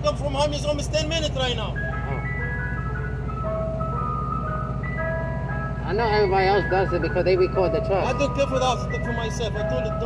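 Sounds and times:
ice cream truck chime tune: 0.0 - 10.0.

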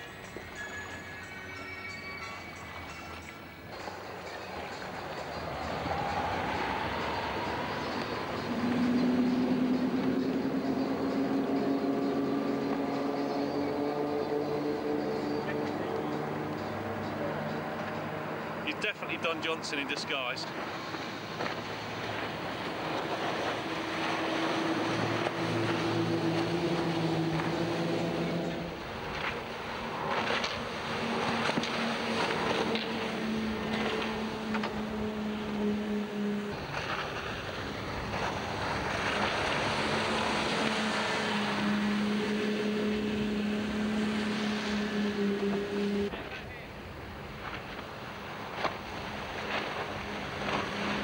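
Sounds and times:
boat engines running: 0.0 - 51.0
rushing water: 0.0 - 51.0
wind: 0.0 - 51.0.

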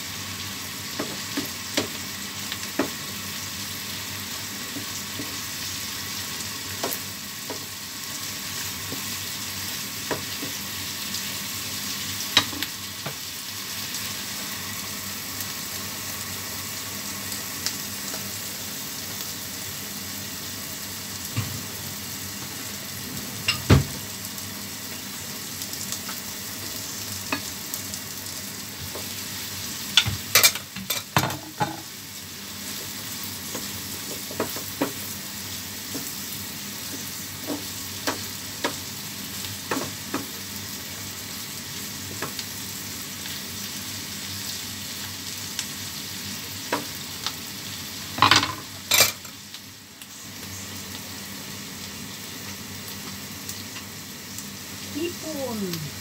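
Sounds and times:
prawns sizzling in a frying pan: 0.0 - 56.0
wooden spatula knocking on a pan: 2.7 - 3.0.

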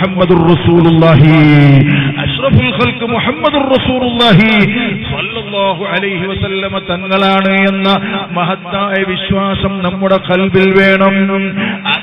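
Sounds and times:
man preaching: 0.0 - 12.0.

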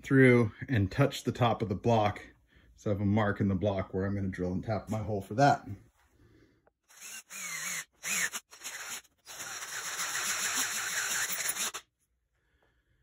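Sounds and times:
electric drill drilling metal: 6.9 - 11.9.

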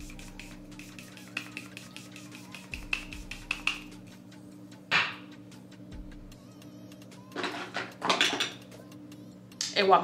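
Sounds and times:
spray bottle hissing: 0.0 - 3.8
woman speaking: 9.6 - 10.0.

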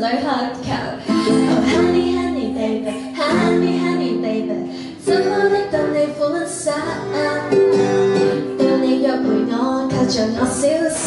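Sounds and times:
woman singing: 0.0 - 11.0
strummed ukulele: 1.0 - 11.0.

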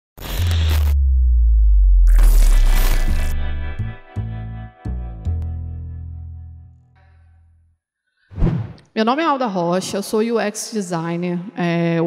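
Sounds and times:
glitchy static: 0.2 - 1.0, 2.1 - 3.6
deep bass tone: 0.2 - 7.7.

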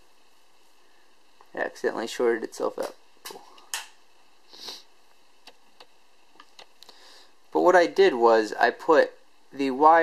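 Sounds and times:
breath or sniff: 4.5 - 4.9, 6.8 - 7.4.

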